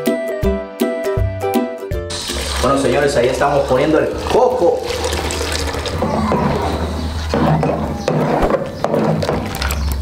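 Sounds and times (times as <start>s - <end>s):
background music: 0.0s - 9.2s
liquid pouring through strainer: 2.1s - 6.1s.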